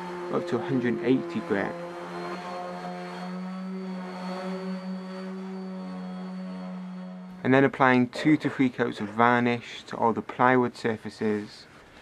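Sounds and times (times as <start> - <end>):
orbital sander humming: 0.0 - 7.5.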